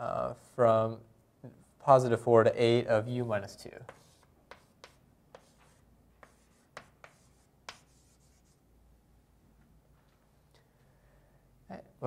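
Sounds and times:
pen tapping and scratching: 3.8 - 8.6.

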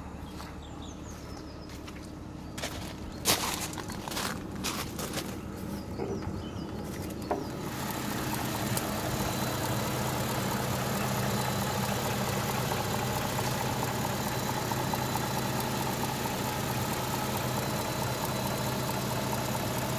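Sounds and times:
car engine idling: 0.0 - 19.9.

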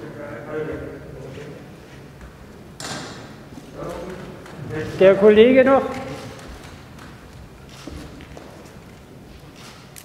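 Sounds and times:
paper rustling: 5.8 - 10.0.

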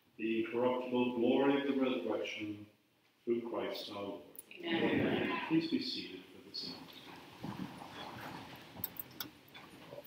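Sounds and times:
people shuffling and rustling: 4.6 - 6.0, 6.6 - 10.0.

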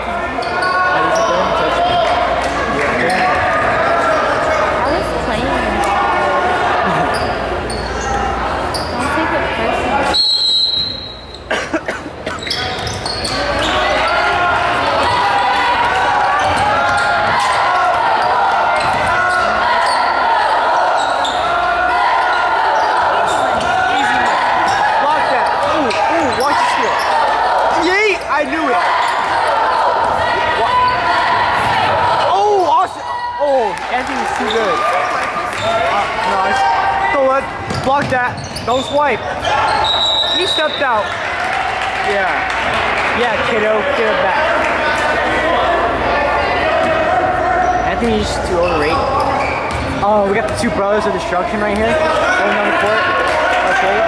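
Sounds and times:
sneakers squeaking: 0.0 - 5.5, 6.8 - 32.2, 34.0 - 41.4, 46.6 - 52.7
crowd chatter: 0.0 - 54.0
shrill referee whistle: 10.0 - 11.4, 39.6 - 41.0.

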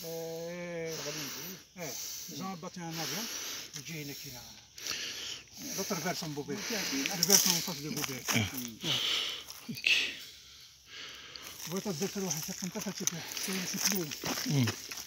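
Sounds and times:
voices talking: 0.0 - 15.0.

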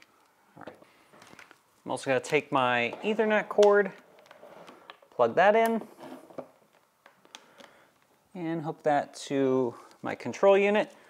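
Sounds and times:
cable plug clicks and rustling: 6.4 - 8.1.

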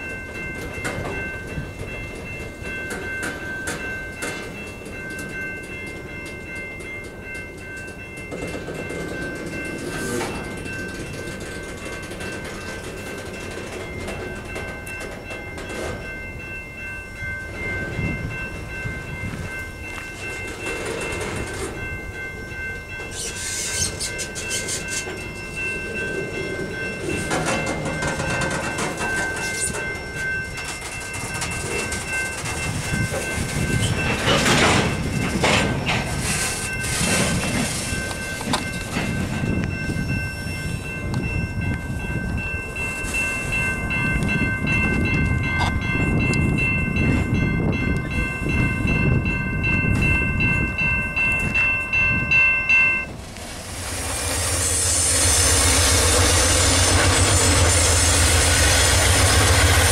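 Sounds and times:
train wheels clattering over rails: 0.0 - 16.2, 20.1 - 22.2, 23.0 - 39.8
level-crossing warning bell: 0.0 - 59.9.

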